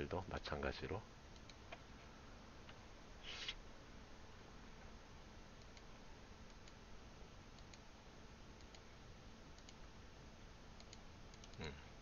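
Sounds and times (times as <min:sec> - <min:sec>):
computer mouse clicks: 0:01.4 - 0:01.8, 0:05.6 - 0:05.9, 0:06.5 - 0:06.8, 0:07.6 - 0:07.8, 0:08.6 - 0:08.9, 0:09.6 - 0:09.8, 0:10.8 - 0:11.6.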